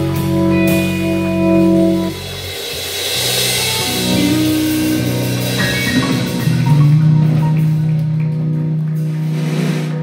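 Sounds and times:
live band holding low chord: 0.0 - 10.0.

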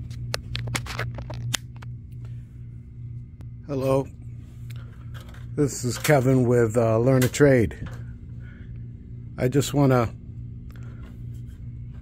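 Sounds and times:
phone handling clicks and rustles: 0.0 - 1.9
low machine hum: 0.0 - 12.0.

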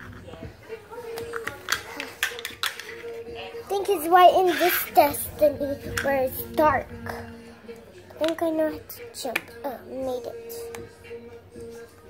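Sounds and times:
plastic toy tapping on tile floor: 1.2 - 3.0, 8.2 - 8.4.

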